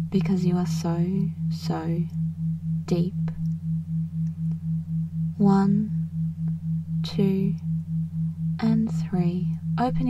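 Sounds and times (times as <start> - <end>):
low pulsing pure tone: 0.0 - 10.0
steady low hum: 0.0 - 10.0.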